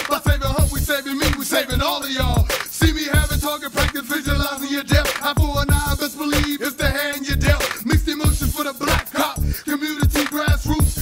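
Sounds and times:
rapping over a beat: 0:00.0 - 0:11.0
deep bass hits: 0:00.3 - 0:00.9, 0:03.2 - 0:03.4, 0:05.4 - 0:06.0.

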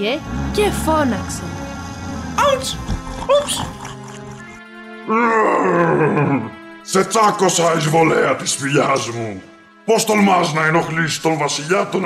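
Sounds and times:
background music: 0:00.0 - 0:12.0
falling growling groan: 0:00.2 - 0:06.6.

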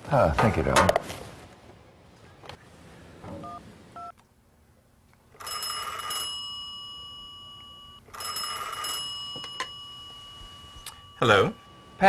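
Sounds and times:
telephone bell ringing: 0:05.4 - 0:12.0.

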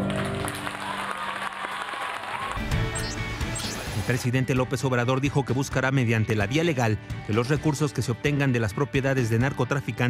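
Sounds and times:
audience applauding: 0:00.0 - 0:03.9
song accompaniment: 0:00.0 - 0:10.0.

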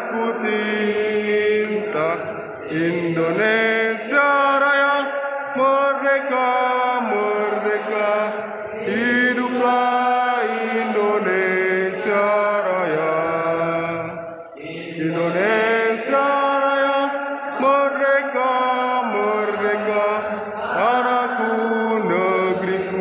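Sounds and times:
person chanting long notes: 0:00.0 - 0:23.0.

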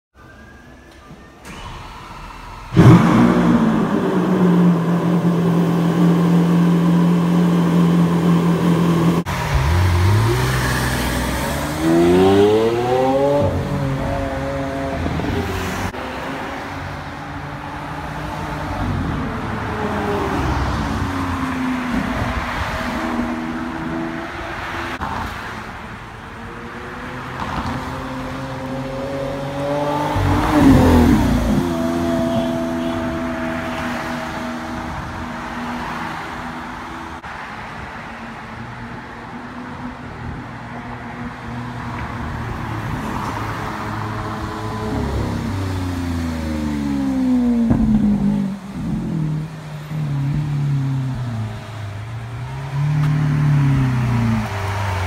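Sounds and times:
car engine starting: 0:00.9 - 0:16.7
car engine revving: 0:01.5 - 0:16.0, 0:27.4 - 0:36.8
car accelerating past: 0:28.5 - 0:35.1.

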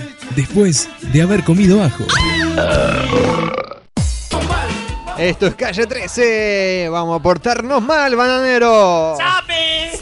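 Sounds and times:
comic burp sound effect: 0:02.4 - 0:03.9.

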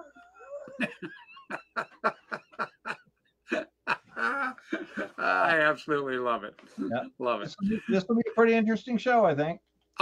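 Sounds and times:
man laughing heartily: 0:00.5 - 0:05.5.

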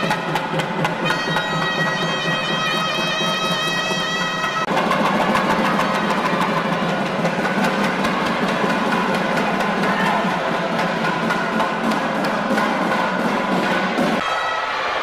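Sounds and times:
fast temple drumming: 0:00.0 - 0:14.2
held wind instrument note: 0:01.0 - 0:06.9.

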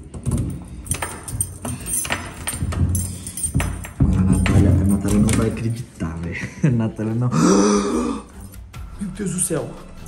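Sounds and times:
key turning in door lock: 0:00.0 - 0:05.8
keys jangling: 0:00.0 - 0:05.9.

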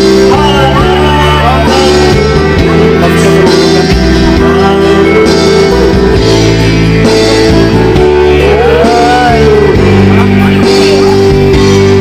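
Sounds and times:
man singing into microphone: 0:00.0 - 0:06.5, 0:08.0 - 0:11.7
karaoke backing track with guitar: 0:00.0 - 0:12.0.

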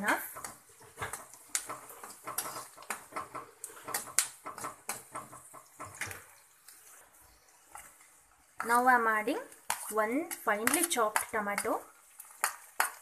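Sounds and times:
spoon scraping and knocking a pan: 0:00.0 - 0:07.0, 0:07.6 - 0:13.0
onions frying: 0:00.0 - 0:13.0.

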